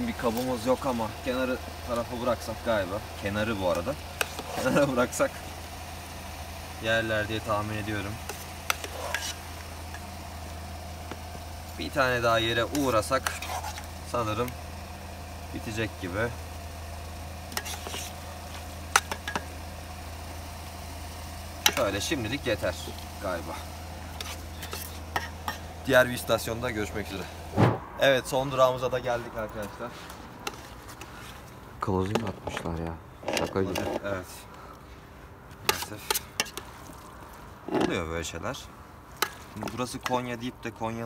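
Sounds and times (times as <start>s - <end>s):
steady low hum: 0.0s - 41.0s
spoon scraping rice in metal pot: 4.2s - 4.8s, 8.2s - 9.5s, 12.6s - 13.9s, 17.5s - 18.2s, 24.1s - 25.7s, 30.4s - 31.1s, 35.6s - 36.7s.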